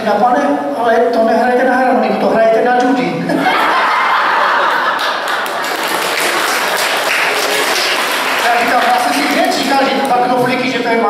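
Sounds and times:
audience laughing: 3.3 - 6.2
scattered clapping: 5.0 - 10.2.

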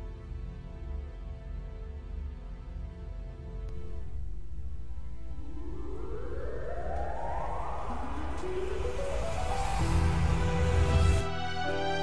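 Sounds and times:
low bass drone: 3.7 - 12.0
rising whoosh: 3.7 - 12.0.

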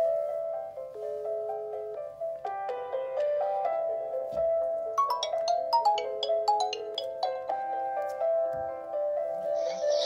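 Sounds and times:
bright bell-like ringtone: 5.0 - 7.7
ringtone melody of held notes: 5.0 - 8.0.

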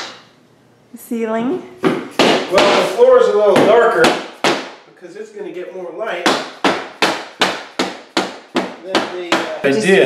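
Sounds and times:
rubber mallet knocking planks: 1.8 - 4.8, 6.2 - 9.6.

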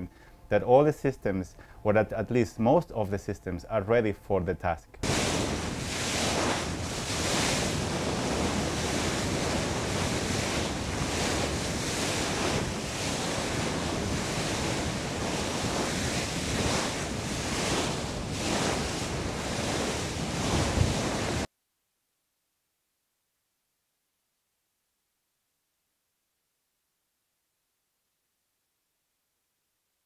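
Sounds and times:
sea water rushing alongside ship: 5.0 - 21.5
wind buffeting microphone: 5.0 - 21.5.

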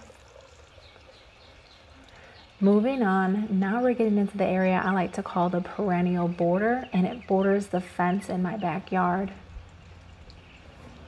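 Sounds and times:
fountain water trickling: 0.0 - 11.0.

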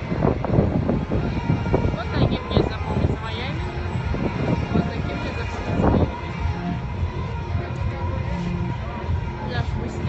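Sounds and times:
faint music: 0.0 - 10.0
people's voices: 0.0 - 10.0
wind buffeting microphone: 0.0 - 10.0.

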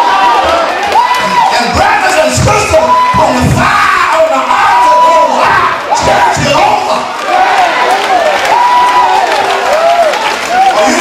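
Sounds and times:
congregation calling out: 0.0 - 9.2
preacher chanting loudly: 1.2 - 7.6.

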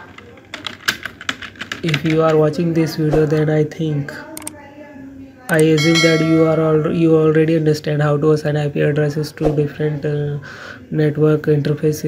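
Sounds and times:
computer keyboard typing: 0.1 - 2.2.

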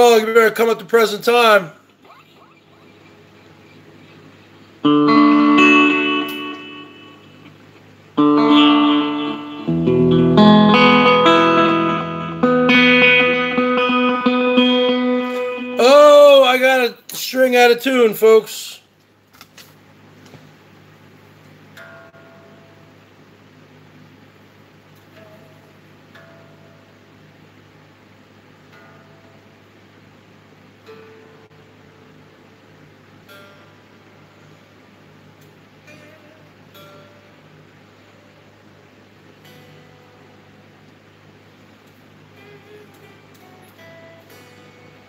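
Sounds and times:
amplifier hum: 0.0 - 17.1
electric guitar strings plucked: 3.6 - 15.8, 30.8 - 31.7, 33.2 - 34.1, 35.4 - 38.4, 39.4 - 45.0.

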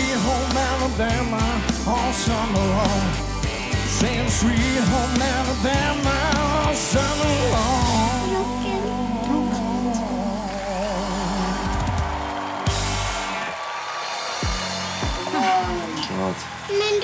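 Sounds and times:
man singing with vibrato: 0.0 - 12.0
live rock band: 0.0 - 17.0.

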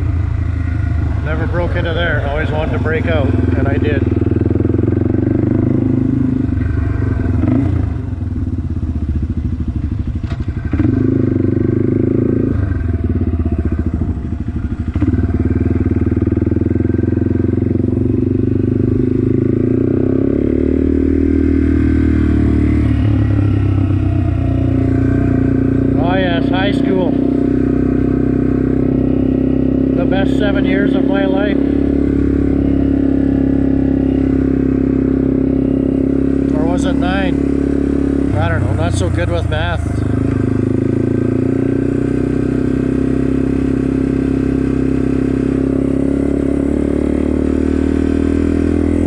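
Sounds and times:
motorcycle engine at low speed: 0.0 - 49.0.

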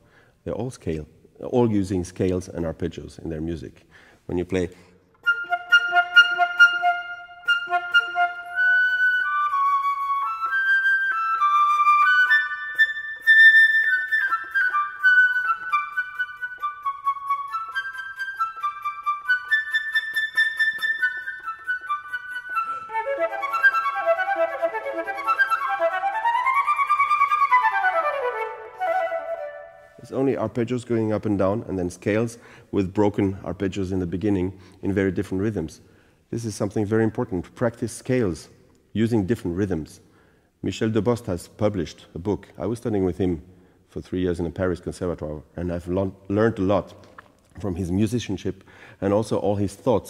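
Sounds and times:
flute playing arpeggios: 5.2 - 30.0.

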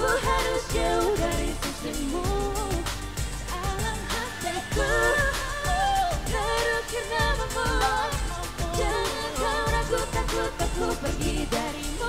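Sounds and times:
backing track with drum beat: 0.0 - 12.0
group singing pop song: 0.0 - 12.0.

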